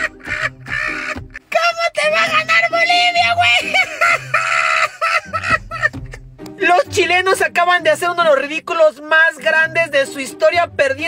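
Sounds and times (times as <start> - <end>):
man laughing hard: 0.0 - 1.2, 3.5 - 6.2.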